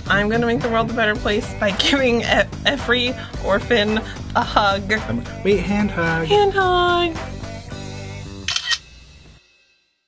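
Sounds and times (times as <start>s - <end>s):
background music: 0.0s - 9.9s
camera shutter click: 8.5s - 8.8s.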